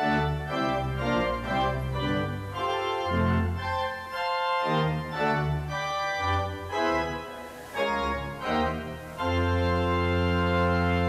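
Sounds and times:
organ playing chords: 0:00.0 - 0:11.0.

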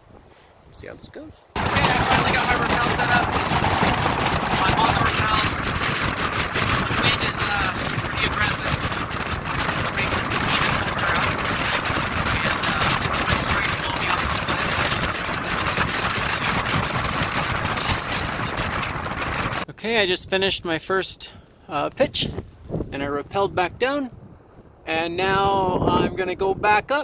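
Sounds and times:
strong wind buffeting microphone: 0:01.6 - 0:19.7, 0:22.0 - 0:27.0.

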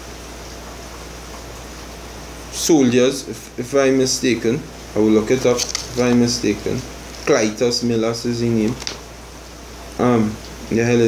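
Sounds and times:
low constant hum: 0:00.0 - 0:11.0
steady background hiss: 0:00.0 - 0:11.0.

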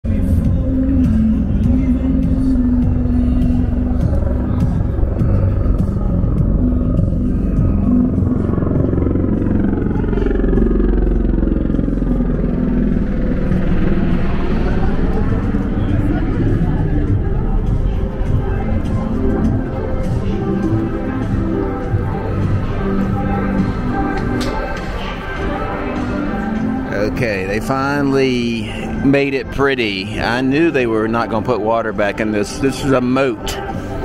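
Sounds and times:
music: 0:00.0 - 0:34.0
traffic rumble: 0:00.1 - 0:32.6
voices: 0:00.1 - 0:34.0.

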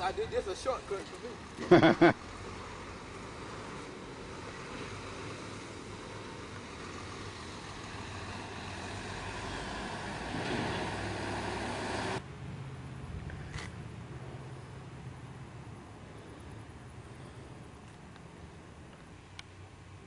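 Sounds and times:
road traffic passing: 0:00.0 - 0:20.0.

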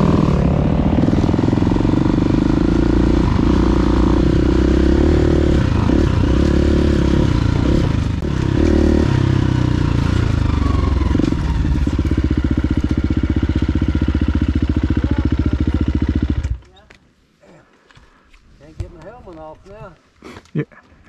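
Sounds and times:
dirt bike engine: 0:00.0 - 0:16.7.

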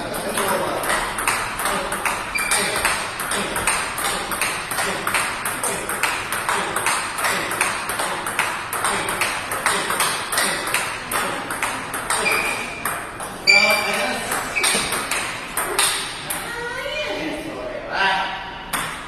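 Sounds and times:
ball clicking off paddles: 0:00.0 - 0:16.4
ball bouncing on table: 0:00.1 - 0:16.4, 0:18.7 - 0:19.0.

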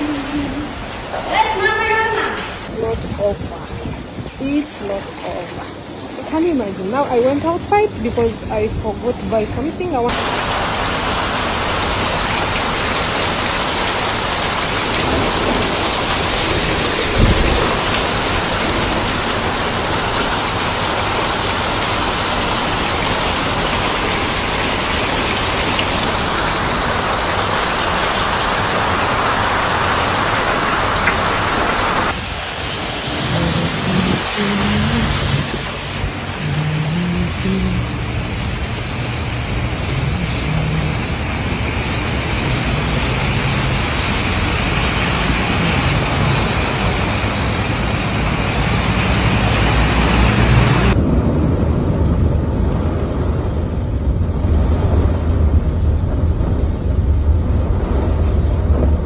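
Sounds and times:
heavy rain on water: 0:00.0 - 0:08.7, 0:09.5 - 0:59.0.

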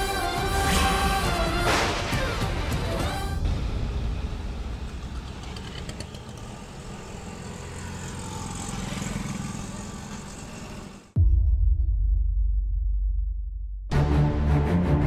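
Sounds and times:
road traffic rumble and hiss: 0:02.8 - 0:11.2.

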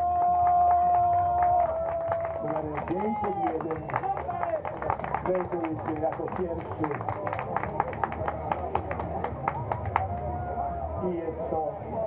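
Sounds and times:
spectators clapping a steady beat: 0:00.0 - 0:10.5
crowd cheering: 0:00.0 - 0:12.0
crowd voices: 0:00.0 - 0:12.0.

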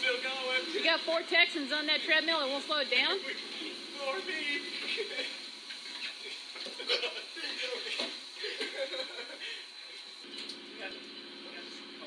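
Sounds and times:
steady low hum: 0:00.0 - 0:12.0
men laughing: 0:04.4 - 0:09.8.

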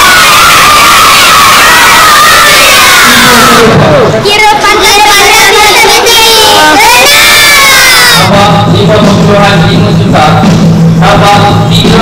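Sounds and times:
children shouting and cheering: 0:04.4 - 0:08.2.

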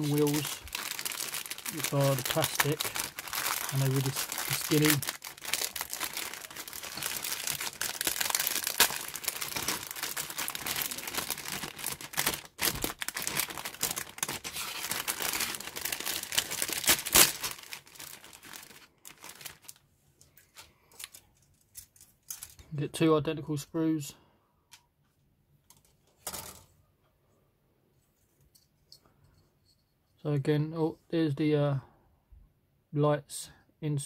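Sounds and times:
plastic bag crinkling: 0:00.0 - 0:22.6
faint handling sounds: 0:18.0 - 0:22.8.

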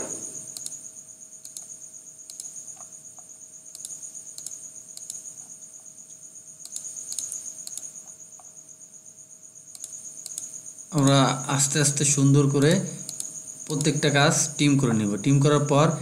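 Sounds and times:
high-pitched pulsing hum: 0:00.0 - 0:16.0
computer mouse clicks: 0:00.5 - 0:00.8, 0:01.4 - 0:05.6, 0:06.6 - 0:08.5, 0:09.7 - 0:11.2, 0:13.0 - 0:14.0.

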